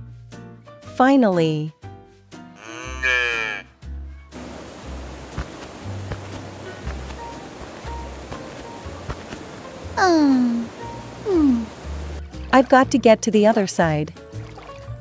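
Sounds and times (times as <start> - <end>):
short pitched vocal call: 2.6 - 3.7
waterfall rushing: 4.4 - 12.2.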